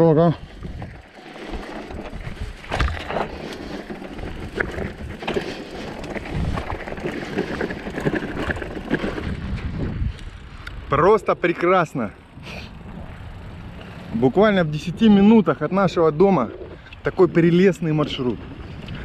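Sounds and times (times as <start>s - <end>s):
bike tyres crunching on gravel: 0.0s - 14.5s
bike knocking and rattling: 0.0s - 19.0s.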